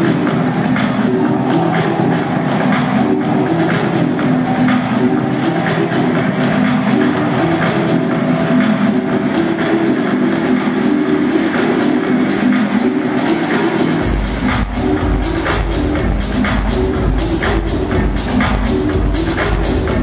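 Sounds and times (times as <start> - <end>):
electronic dance music: 0.0 - 20.0
heavy bass line and kick drum: 0.0 - 20.0.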